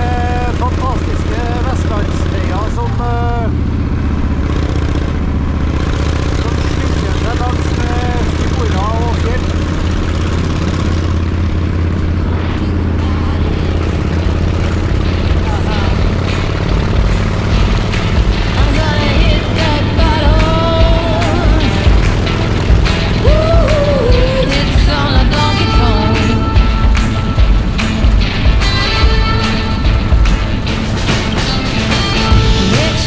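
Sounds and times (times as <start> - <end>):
motorcycle engine running: 0.0 - 33.0.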